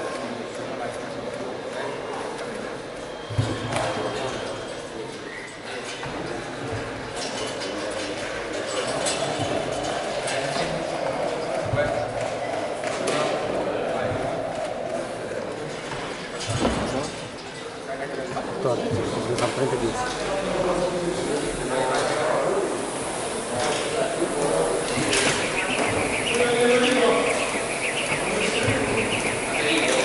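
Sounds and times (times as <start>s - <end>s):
indistinct voices: 0.8s - 30.0s.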